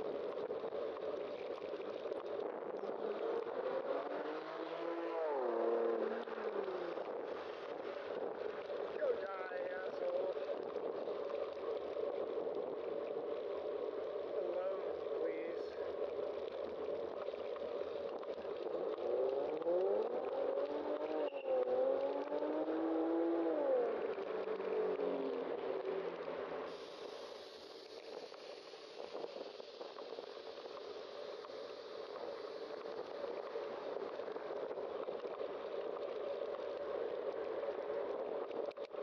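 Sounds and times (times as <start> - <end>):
wind and road noise: 0.0 - 39.0
car engine accelerating: 2.9 - 7.2, 18.6 - 26.7.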